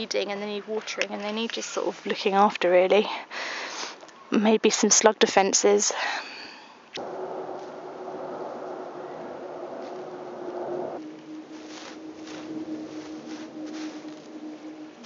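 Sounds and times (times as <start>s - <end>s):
distant engine drone: 7.0s - 15.0s
weeds pulled from soil rustling: 11.0s - 15.0s.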